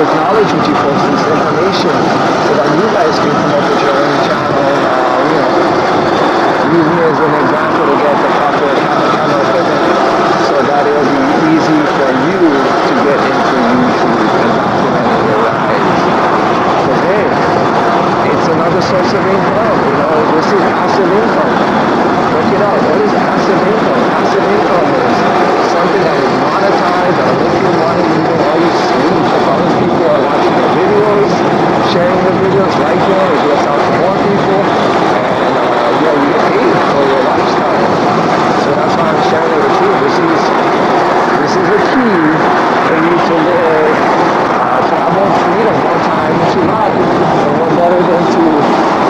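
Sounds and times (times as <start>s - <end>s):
wind rushing over microphone: 0.0s - 49.0s.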